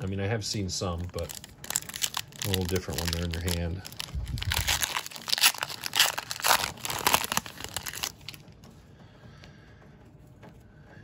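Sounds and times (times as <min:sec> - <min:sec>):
faint handling of cards: 0:00.0 - 0:10.7
wrapper tearing and crinkling: 0:01.0 - 0:08.4.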